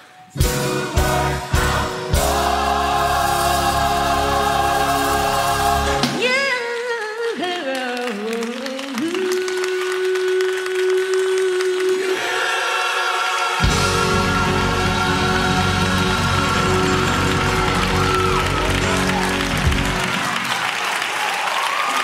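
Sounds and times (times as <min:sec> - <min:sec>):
gospel choir singing: 0:00.2 - 0:06.4, 0:11.7 - 0:19.8
bass accompaniment: 0:00.3 - 0:06.2, 0:13.6 - 0:20.5.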